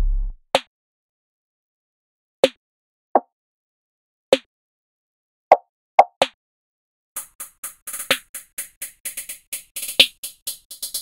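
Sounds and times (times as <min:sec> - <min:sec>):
rapid ticking hi-hats: 0:07.2 - 0:11.0.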